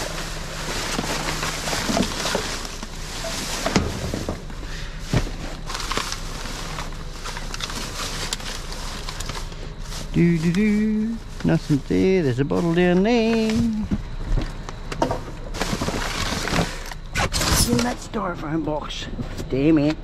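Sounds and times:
plastic bags rustling: 0.0 - 14.6, 15.4 - 18.0
items knocking in dumpster: 0.8 - 5.7.

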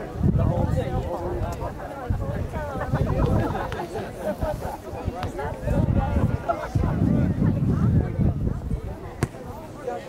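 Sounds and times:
ball kick thud: 9.2 - 9.6.

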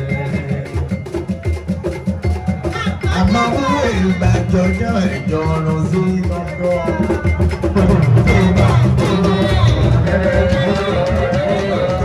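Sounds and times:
drums and percussion beating: 0.0 - 12.0.

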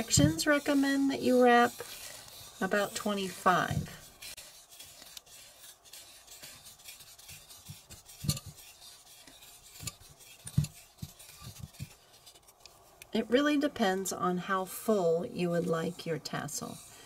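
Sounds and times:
thread rubbing and handling: 0.0 - 13.2.

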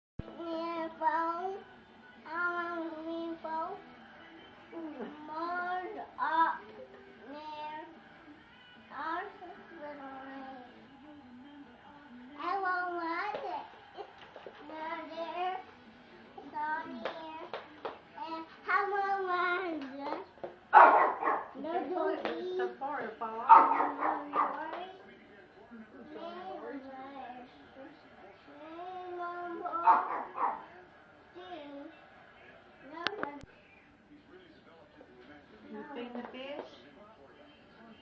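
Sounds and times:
toddler singing: 0.3 - 3.8, 4.9 - 8.0, 8.9 - 10.8, 12.4 - 13.8, 28.5 - 30.1.

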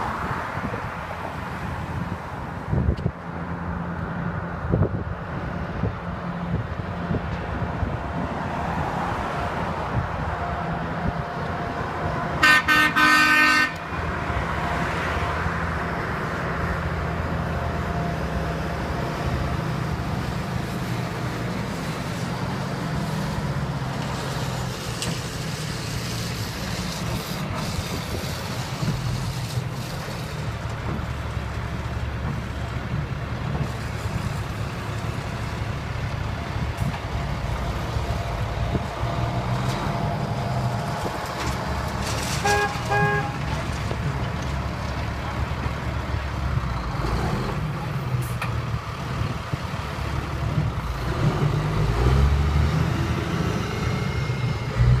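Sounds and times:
street traffic: 0.0 - 55.0
heavy truck engine running: 9.5 - 55.0
horn toots: 12.4 - 13.8, 42.4 - 43.4.

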